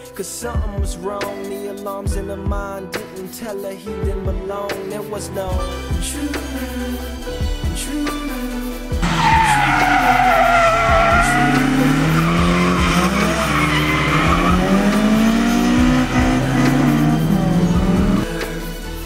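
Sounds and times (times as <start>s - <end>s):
rap music: 0.0s - 19.0s
tyres squealing: 9.0s - 18.3s
engines revving: 9.0s - 19.0s.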